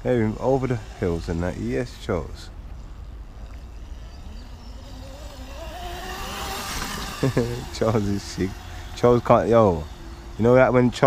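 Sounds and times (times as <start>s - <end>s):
electric dirt bike motor whining: 0.0s - 11.0s.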